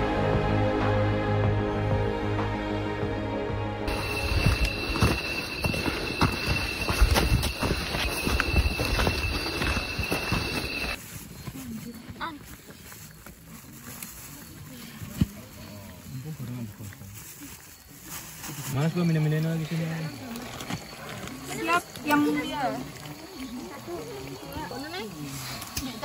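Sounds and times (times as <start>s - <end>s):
high insect trill: 3.9s - 12.3s, 15.4s - 26.0s
footsteps on forest trail: 3.9s - 26.0s.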